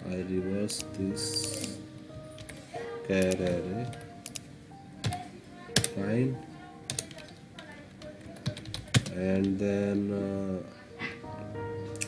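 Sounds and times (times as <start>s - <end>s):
faint background music: 0.0s - 12.0s
keyboard keystroke clicks: 6.9s - 9.5s.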